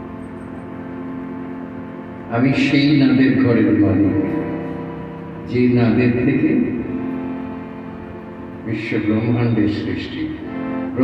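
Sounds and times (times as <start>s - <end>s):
harmonium holding a chord: 0.0s - 11.0s.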